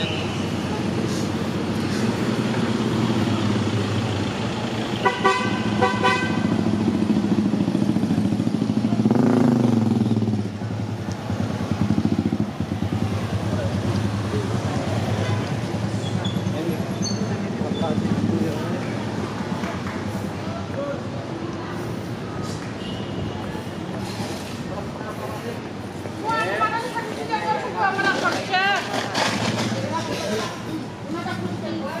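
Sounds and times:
traffic passing close by: 0:00.0 - 0:32.0
vehicle passing loudly: 0:00.7 - 0:20.6
horn toots: 0:05.0 - 0:06.6.

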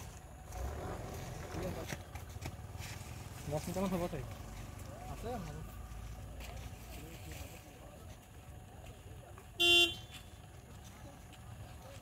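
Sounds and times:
outdoor background noise: 0:00.0 - 0:12.0
faint voices: 0:03.4 - 0:12.0
short horn honk: 0:09.6 - 0:10.3.

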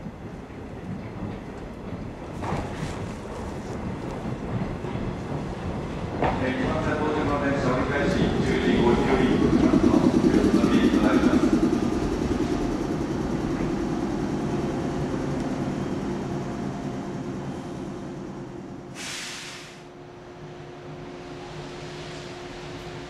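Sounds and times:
air brake hiss: 0:18.9 - 0:19.9
electric train braking to a stop: 0:18.9 - 0:19.9.

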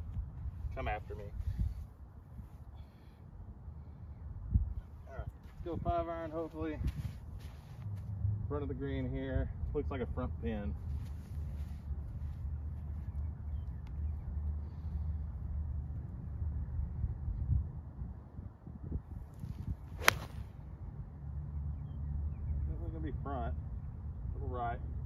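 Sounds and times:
steady low rumble: 0:00.0 - 0:21.3
golf club swishing: 0:19.3 - 0:20.6.

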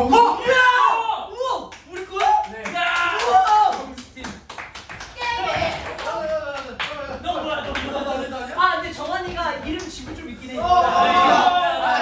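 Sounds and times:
people clapping: 0:01.6 - 0:12.0.

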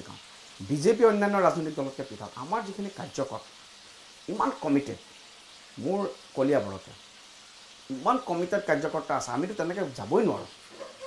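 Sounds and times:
faint steady hiss: 0:00.0 - 0:11.0
man speaking: 0:04.3 - 0:05.0.

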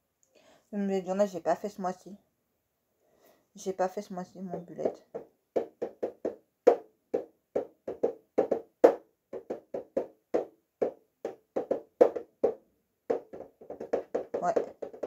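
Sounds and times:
fingers tapping on a box: 0:04.6 - 0:15.0.

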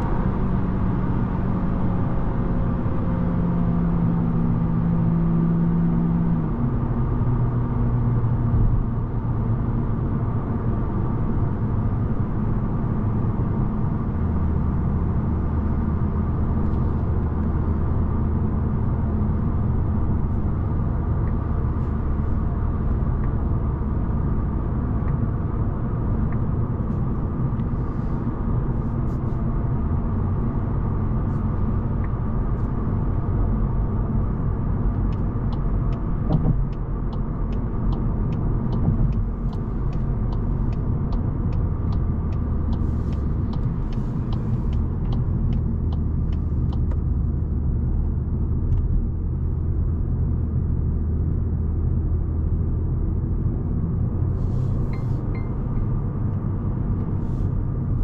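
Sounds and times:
car engine hum: 0:00.0 - 0:58.0
tyre and road rumble: 0:16.1 - 0:58.0.

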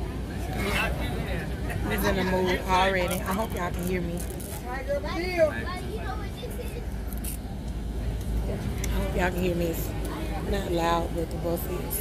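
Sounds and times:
bus rumble from inside: 0:00.0 - 0:12.0.

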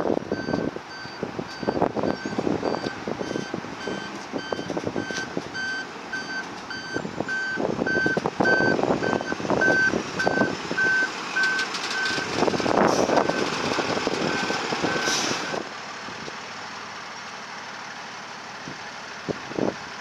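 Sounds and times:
fire engine engine rumble: 0:00.0 - 0:20.0
reversing alarm beeping: 0:00.3 - 0:12.4, 0:13.1 - 0:13.6.

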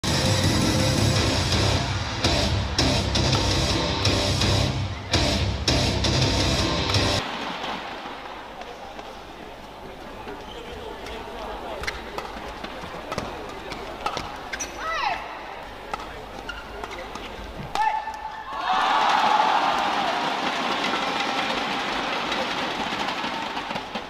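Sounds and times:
shoes squeaking on court: 0:10.2 - 0:14.9, 0:16.0 - 0:17.7
racquet hitting shuttlecock: 0:11.8 - 0:14.8
crowd cheering and applauding: 0:18.5 - 0:23.9.

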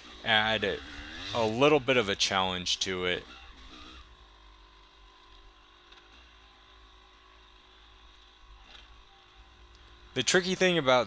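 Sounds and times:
faint dirt bike engine: 0:00.0 - 0:11.0.

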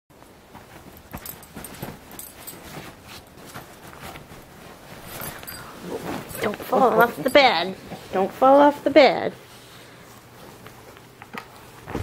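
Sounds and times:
bedding rustling under paws: 0:00.2 - 0:11.0.

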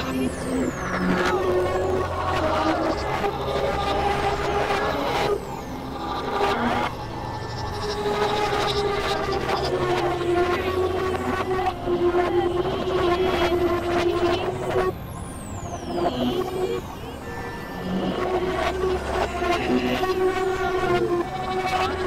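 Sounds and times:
synthesizer drone tone: 0:00.0 - 0:22.0.

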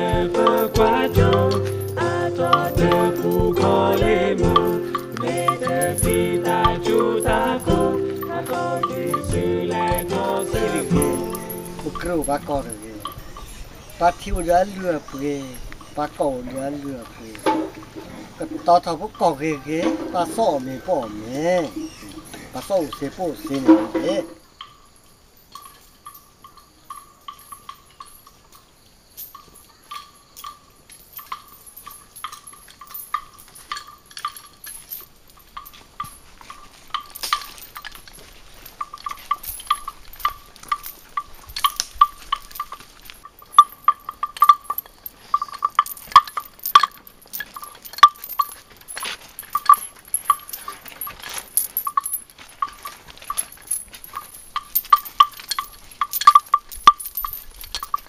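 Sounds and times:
animal bell clanking: 0:00.0 - 0:58.0.

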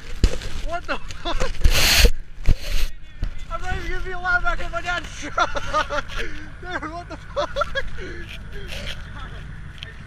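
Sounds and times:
people talking and laughing: 0:00.8 - 0:10.0
short loud hiss: 0:01.6 - 0:02.9.

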